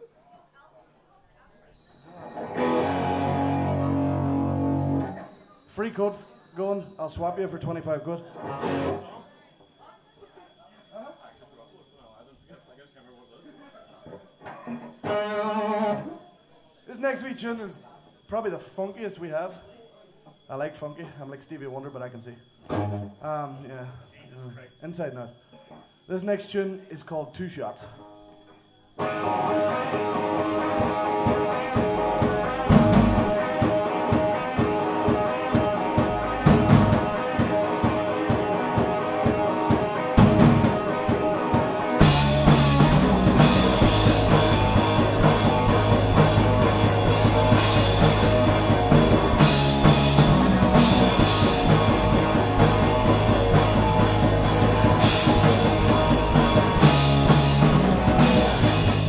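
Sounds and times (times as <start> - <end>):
electric guitar riff: 2.1 - 5.3, 8.4 - 9.1, 14.4 - 16.2, 22.6 - 23.2, 29.0 - 59.0
punk rock band playing: 2.3 - 5.3, 8.4 - 9.0, 15.0 - 16.1, 29.0 - 59.0
drums and bass: 2.6 - 5.2, 29.0 - 59.0.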